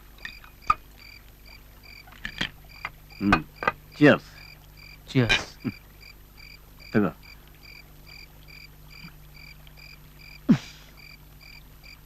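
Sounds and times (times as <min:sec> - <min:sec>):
faint low hum: 0:00.0 - 0:12.0
crickets chirping: 0:00.2 - 0:12.0.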